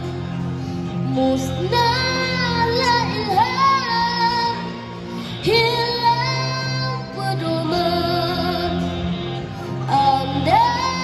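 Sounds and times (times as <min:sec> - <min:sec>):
backing music: 0:00.0 - 0:11.0
electric guitar: 0:00.0 - 0:11.0
boy singing into a microphone: 0:01.1 - 0:04.8, 0:05.4 - 0:08.9, 0:09.9 - 0:11.0.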